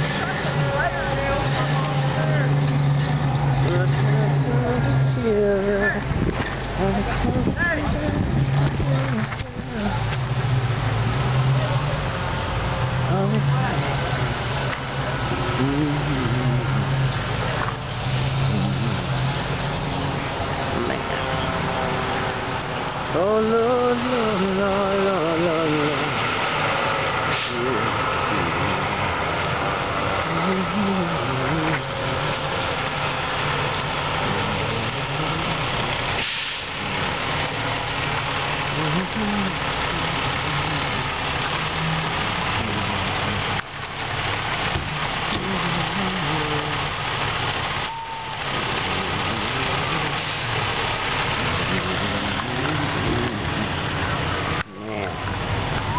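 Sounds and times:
heavy vehicle engine running: 0.0s - 55.9s
indistinct voices: 0.0s - 55.9s.

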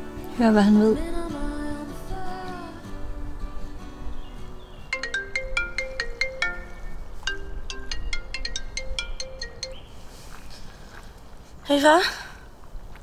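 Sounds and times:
phone ringtone melody: 4.9s - 9.9s.

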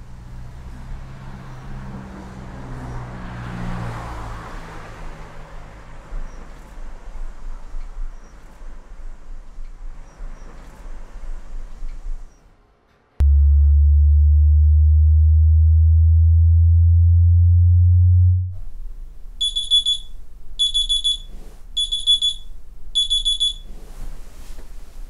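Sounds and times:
loud deep low drone: 13.2s - 18.8s
alarm clock beeping: 19.4s - 23.7s.

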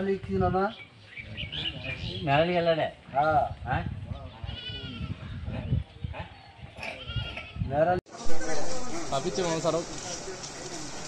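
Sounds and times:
people's voices: 8.1s - 11.0s.

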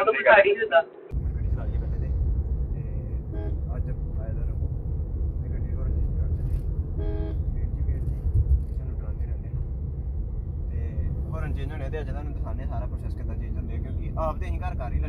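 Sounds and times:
road and engine rumble: 0.0s - 15.0s
car horn toots: 3.2s - 3.9s, 7.0s - 7.5s.

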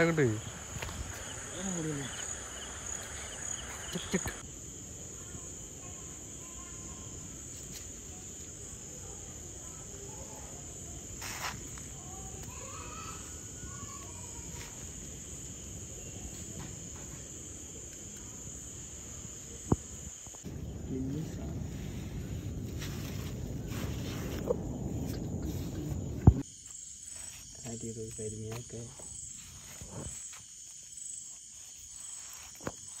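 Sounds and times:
crickets chirring: 0.0s - 33.0s
night insects trilling: 0.0s - 33.0s
low background rumble: 20.5s - 26.4s.

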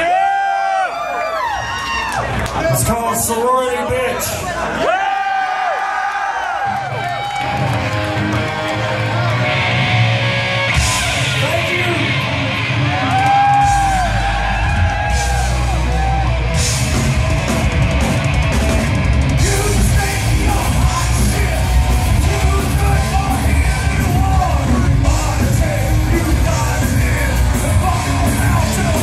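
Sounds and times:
drums: 6.6s - 29.0s
distorted electric guitars: 7.2s - 29.0s
bass guitar: 7.3s - 29.0s.

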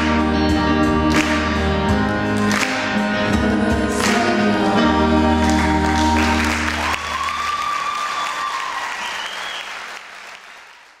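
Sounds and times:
audience applause: 5.4s - 11.0s.

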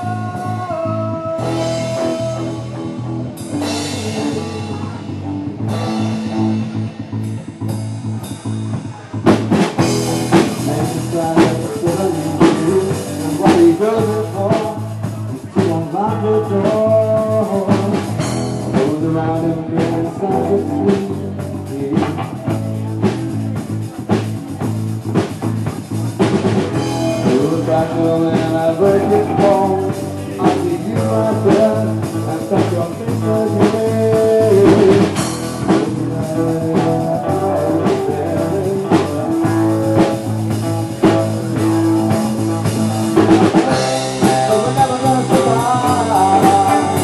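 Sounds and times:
electric guitar chords ringing: 0.0s - 9.0s, 26.6s - 47.0s
drum kit playing: 0.0s - 47.0s.

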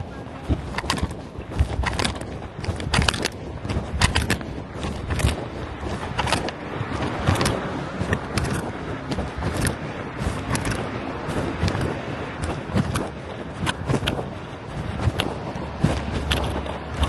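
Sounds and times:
knocks and scrapes on microphone: 0.0s - 17.0s
rustling handling noise: 0.0s - 17.0s.

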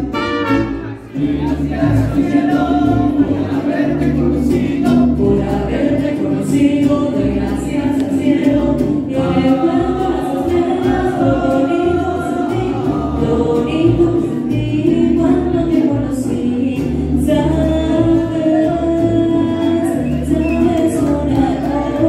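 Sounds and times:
group of voices singing: 0.0s - 22.0s
mariachi band playing: 0.0s - 22.0s
steady bass line: 0.0s - 22.0s.

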